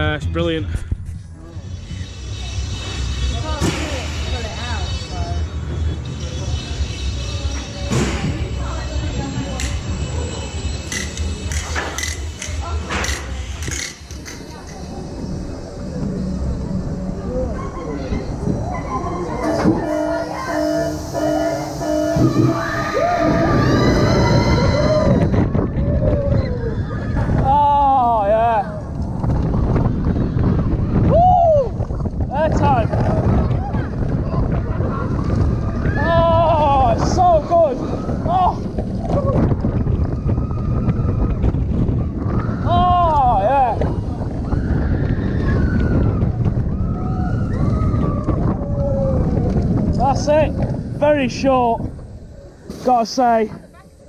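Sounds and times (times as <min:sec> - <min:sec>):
roller coaster track rumble: 0:00.0 - 0:54.0
wind rushing on microphone: 0:12.3 - 0:54.0
steady electronic tones: 0:14.5 - 0:25.5
riders screaming and whooping: 0:15.0 - 0:51.0.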